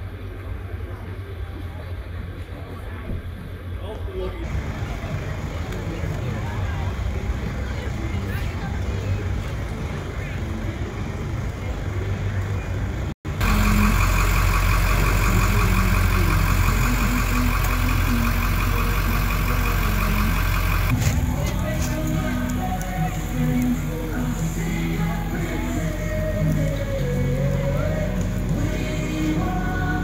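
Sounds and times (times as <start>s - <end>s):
distant voices: 0.0s - 30.0s
truck engine idling: 4.4s - 30.0s.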